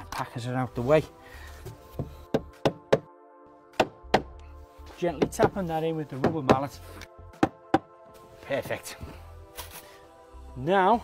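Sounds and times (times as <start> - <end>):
rubber mallet knocking decking plank: 2.0 - 3.1, 3.8 - 4.3, 7.4 - 7.9.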